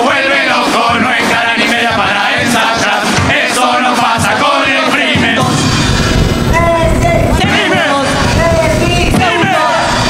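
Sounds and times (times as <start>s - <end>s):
chorus singing together: 0.0s - 10.0s
sharp hits: 5.1s - 9.5s.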